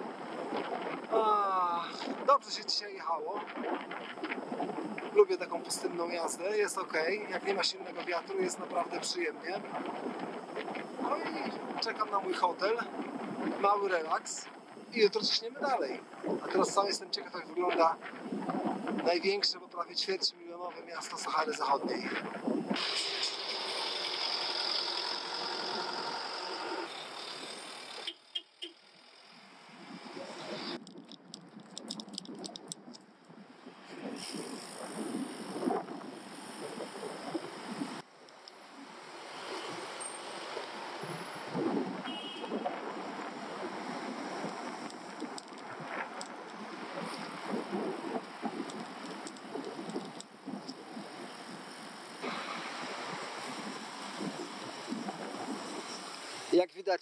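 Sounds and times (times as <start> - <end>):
street traffic noise: 22.8 - 30.8, 38.0 - 47.2, 51.4 - 54.9.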